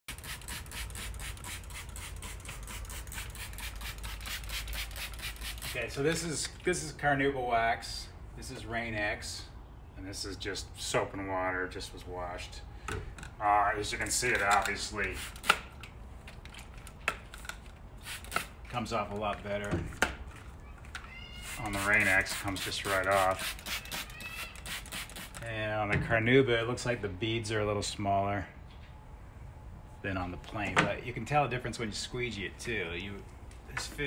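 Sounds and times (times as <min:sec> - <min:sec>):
spray bottle squirting bursts: 0:00.1 - 0:05.9, 0:14.5 - 0:15.7, 0:18.0 - 0:18.6, 0:21.4 - 0:25.4.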